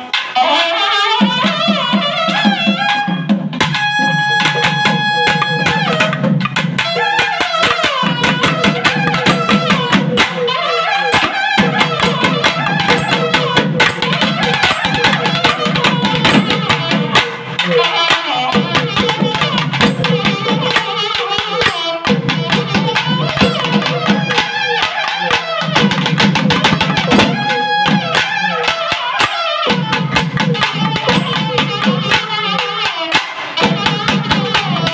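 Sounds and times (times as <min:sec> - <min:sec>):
barrel drums beating fast: 0:00.0 - 0:34.9.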